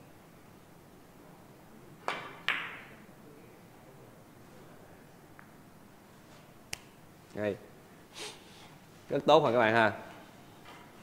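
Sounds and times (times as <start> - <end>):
cue tip striking ball: 2.1 - 3.0.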